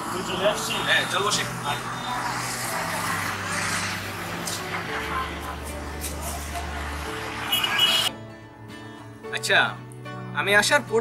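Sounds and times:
vehicle passing: 0.0 - 8.1
street traffic: 0.0 - 10.3.

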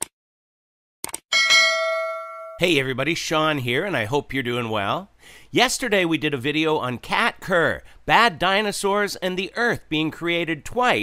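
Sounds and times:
notification bell ding: 1.3 - 2.6.

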